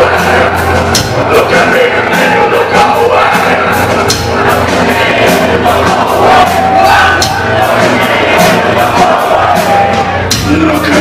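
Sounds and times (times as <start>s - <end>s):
crowd shouting along: 0.0s - 11.0s
drums hitting steady beat: 0.0s - 11.0s
heavy metal band playing live: 0.0s - 11.0s.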